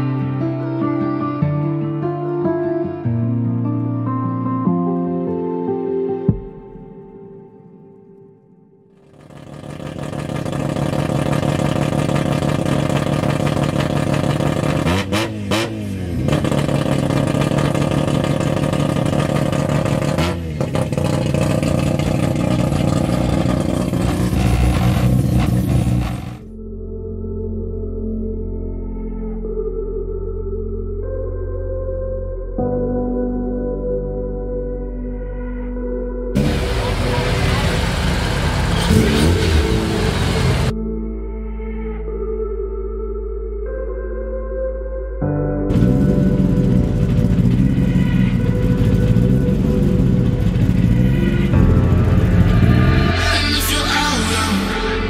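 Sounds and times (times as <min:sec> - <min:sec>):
car engine idling loudly: 0:09.0 - 0:15.2, 0:16.3 - 0:26.4, 0:36.4 - 0:40.7, 0:45.7 - 0:53.0
engine revving blips: 0:09.0 - 0:26.5, 0:36.4 - 0:40.7, 0:45.7 - 0:55.0
people talking: 0:53.2 - 0:55.0.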